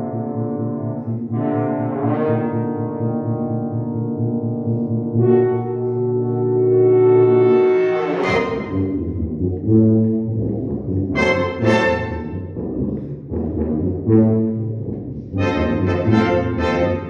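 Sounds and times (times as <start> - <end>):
brass ensemble playing chords: 0.0 - 17.0.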